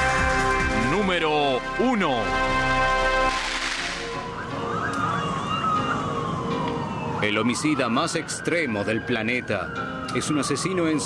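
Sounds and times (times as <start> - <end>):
distant siren wailing: 2.3 - 11.0.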